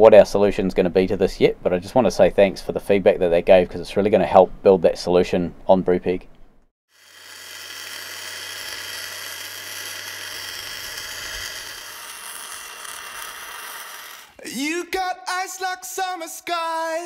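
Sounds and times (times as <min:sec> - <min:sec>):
welding arc crackling hiss: 0:06.9 - 0:14.4.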